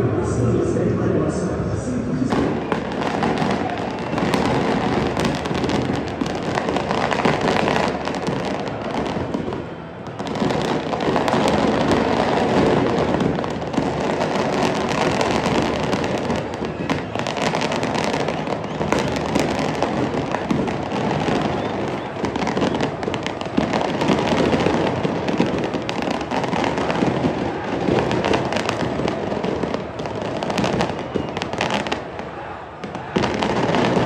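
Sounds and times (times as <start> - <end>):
firecrackers crackling: 2.3 - 34.0.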